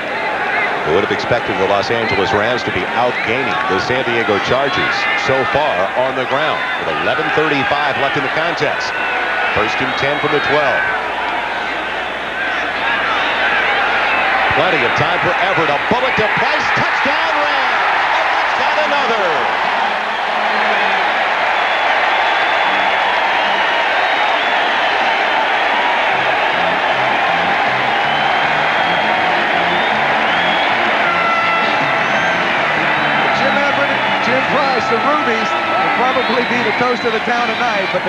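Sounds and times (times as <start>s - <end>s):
stadium crowd cheering: 0.0s - 38.0s
stadium music melody: 14.2s - 38.0s.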